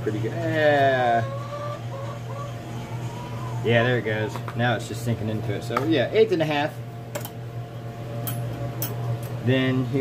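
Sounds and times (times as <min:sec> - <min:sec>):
electric fan humming: 0:00.0 - 0:10.0.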